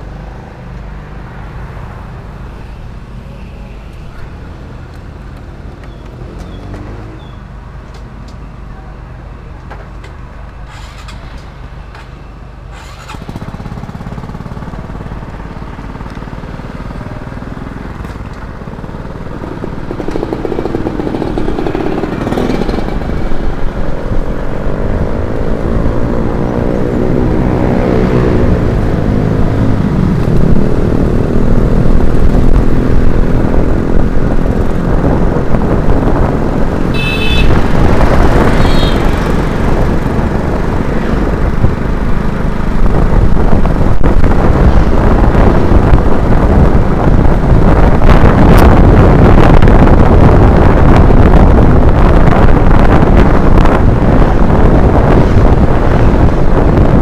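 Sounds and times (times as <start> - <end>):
motor scooter engine accelerating: 12.7 - 57.0
wind rumble on microphone: 12.8 - 57.0.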